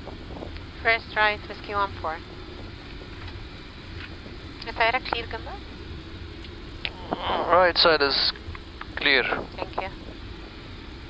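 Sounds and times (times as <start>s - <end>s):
aircraft cockpit low rumble: 0.0s - 11.0s.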